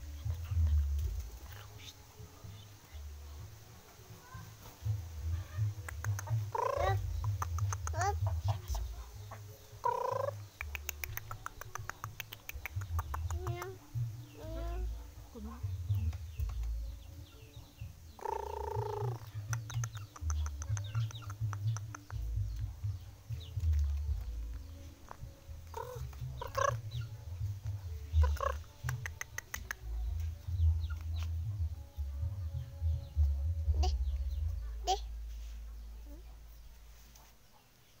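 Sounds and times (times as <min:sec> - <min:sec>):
chickens clucking: 0:02.4 - 0:31.7.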